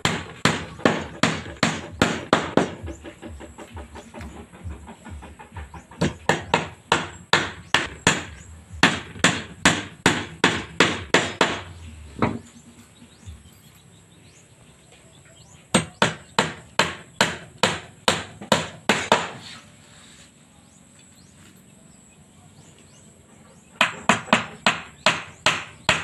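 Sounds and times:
hammer driving nails into wood: 0.0s - 4.5s, 5.9s - 12.4s, 15.7s - 19.4s, 23.8s - 26.0s.

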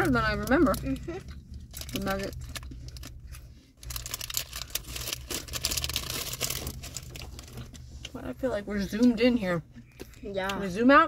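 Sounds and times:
plastic bag crinkling: 0.0s - 7.9s.

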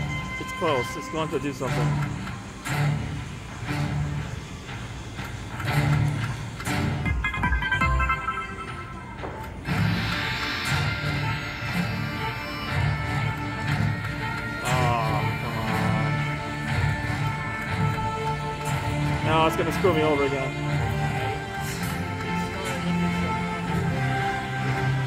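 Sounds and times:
slot machine bonus music: 7.1s - 13.6s.

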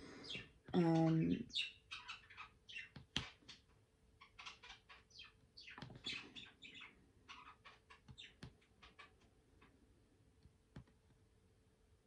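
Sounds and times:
bird chirping: 0.0s - 9.8s.

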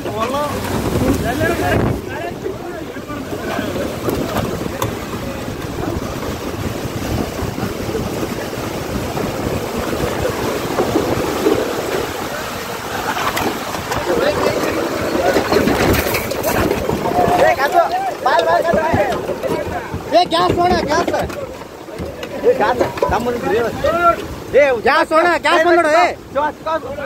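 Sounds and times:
heavy rain: 0.0s - 27.0s
strong storm wind on microphone: 0.0s - 27.0s.

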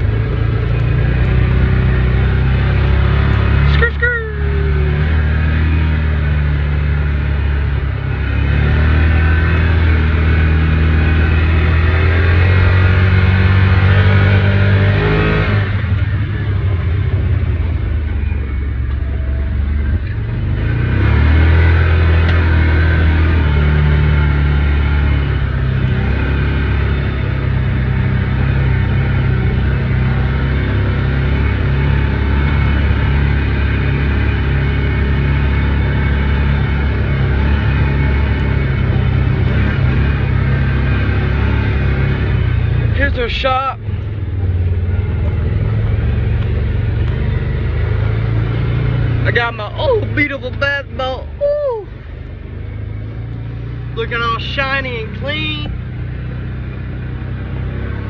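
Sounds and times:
utility vehicle engine droning: 0.0s - 58.0s.

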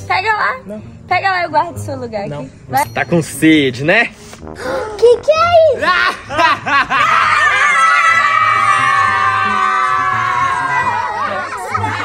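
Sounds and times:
people screaming: 6.9s - 12.0s.

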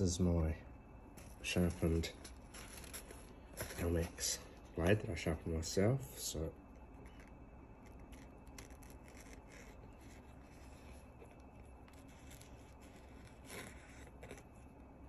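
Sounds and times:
knife scratching paper towel: 7.1s - 14.6s.

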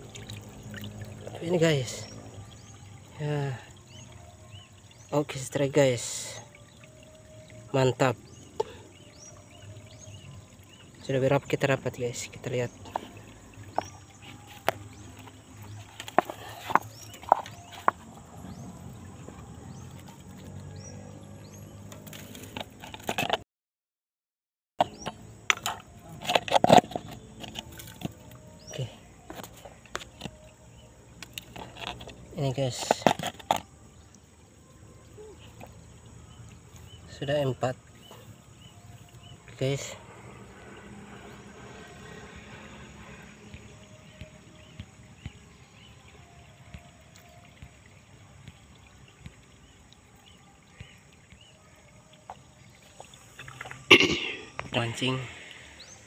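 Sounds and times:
outdoor background hiss: 26.9s - 56.0s.

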